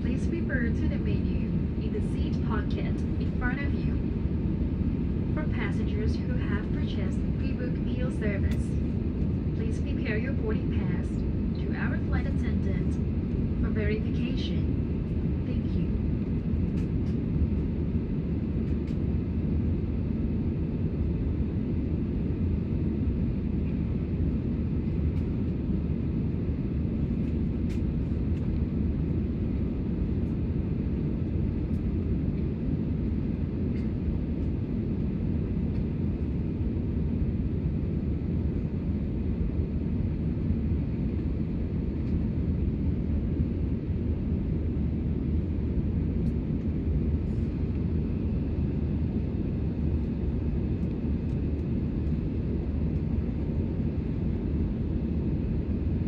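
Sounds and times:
airplane engines droning in cabin: 0.0s - 56.0s.

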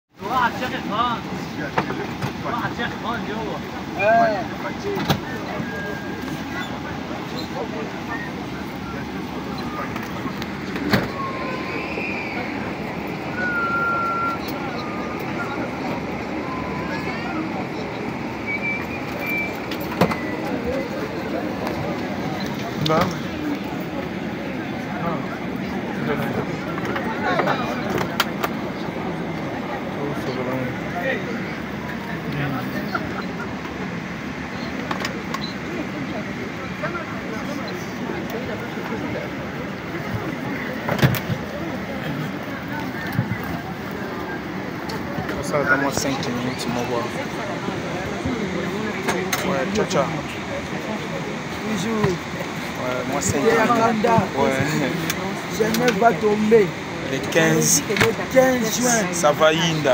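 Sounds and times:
passenger chatter: 0.1s - 59.9s
airliner cabin rush: 0.4s - 56.4s.

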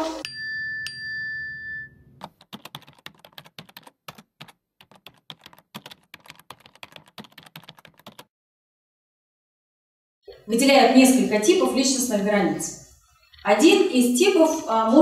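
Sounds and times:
ringing ding: 0.0s - 2.2s
keyboard typing clicks: 2.2s - 8.3s.

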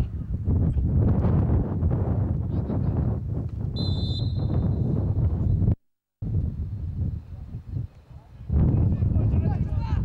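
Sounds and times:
wind buffeting microphone: 0.0s - 10.0s
referee's whistle blast: 3.8s - 4.9s.

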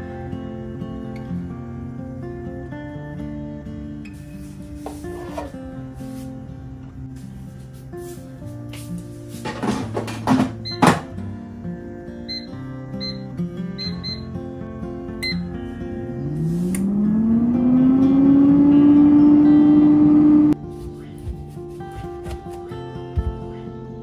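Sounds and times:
touch panel beeping: 12.3s - 14.3s
air fryer fan motor humming: 16.4s - 20.5s.

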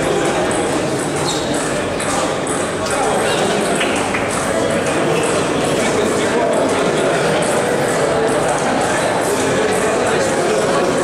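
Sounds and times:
many people talking: 0.0s - 11.0s.

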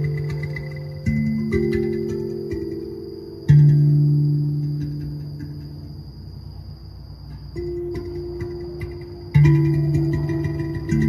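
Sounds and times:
steel tongue drum note: 0.0s - 6.0s, 7.3s - 11.0s
crickets trilling: 0.0s - 11.0s.

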